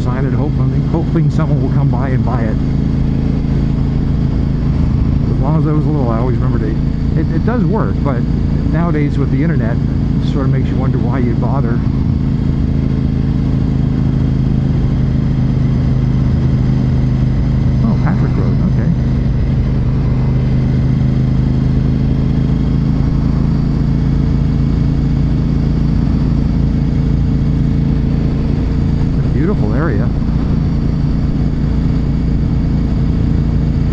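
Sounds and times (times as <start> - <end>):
motorcycle engine running steadily: 0.0 - 33.9.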